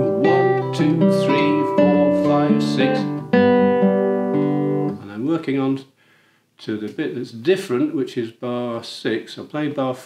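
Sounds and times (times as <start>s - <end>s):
classical guitar fingerpicked: 0.0s - 5.0s.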